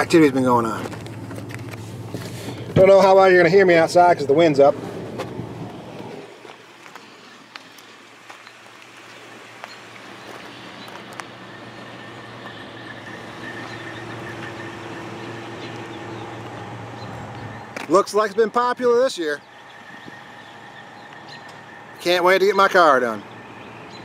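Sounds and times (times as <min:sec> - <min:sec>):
vehicle engine hum: 0:00.0 - 0:24.0.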